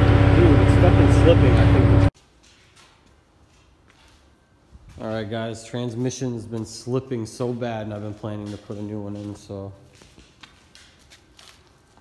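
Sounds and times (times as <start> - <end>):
footsteps on concrete: 2.2 - 12.0.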